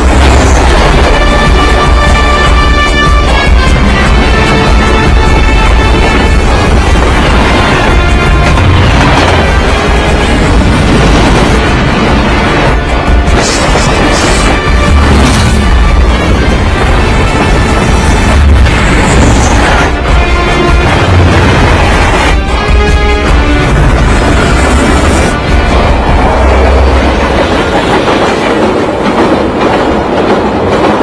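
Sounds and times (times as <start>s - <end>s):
heavy low rumble: 0.0s - 30.8s
dramatic film music: 0.0s - 31.0s.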